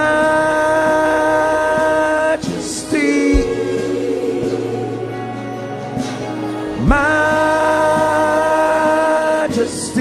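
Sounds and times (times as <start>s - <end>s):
man singing into microphone: 0.0s - 4.6s, 6.8s - 10.0s
voices singing along: 0.0s - 10.0s.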